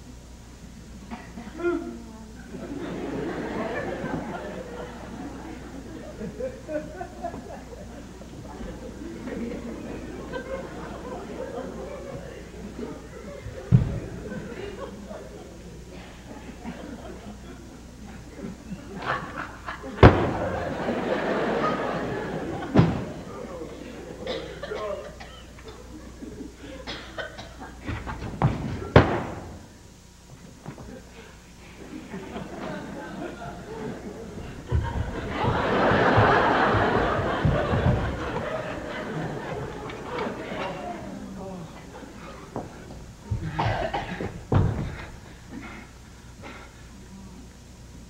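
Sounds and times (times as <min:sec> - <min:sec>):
low murmured sounds: 0:00.0 - 0:48.0
person coughing: 0:24.2 - 0:25.5, 0:43.4 - 0:44.4.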